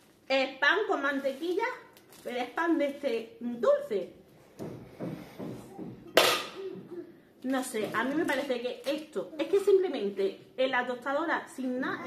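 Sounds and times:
plastic bag rustling: 0.0 - 3.4, 7.4 - 9.6.

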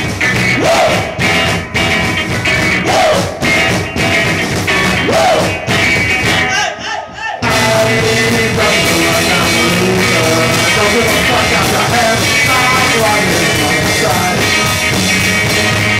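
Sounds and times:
live rock band playing: 0.0 - 6.6, 7.4 - 15.9.

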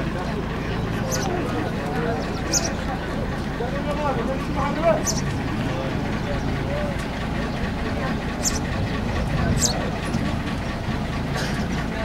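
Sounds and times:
motorboat engine idling: 0.0 - 12.0
people chattering: 0.0 - 12.0.

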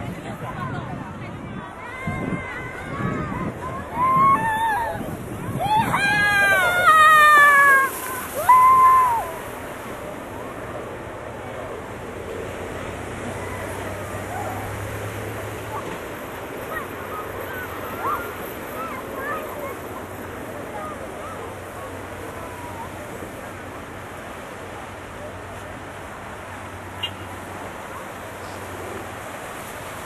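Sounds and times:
distant children calling: 1.8 - 9.6, 13.2 - 23.0
children squealing: 2.0 - 9.4, 16.6 - 19.4
high cry: 2.9 - 9.4.

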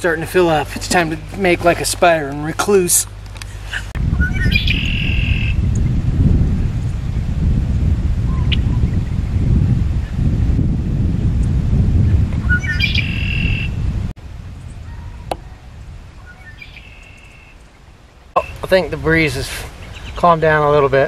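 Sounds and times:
wind rumbling on microphone: 0.0 - 21.0
songbird singing with trill: 4.1 - 6.0, 12.4 - 13.9, 16.2 - 17.7, 19.8 - 20.2.

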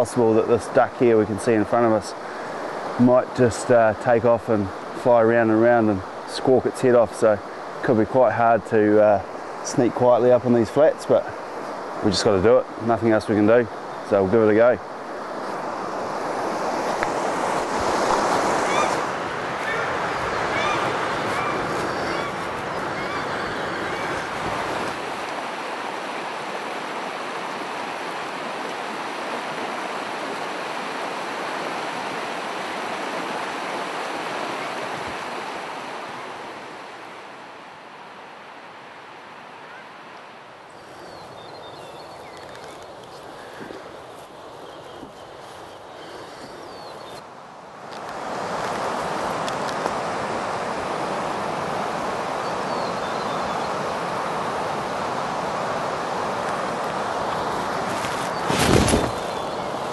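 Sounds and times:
river rushing over stones: 0.0 - 41.0, 42.3 - 59.9.

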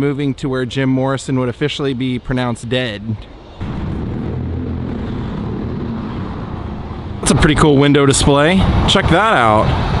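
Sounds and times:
street noise: 0.0 - 10.0
vehicle engine running: 3.6 - 7.8.

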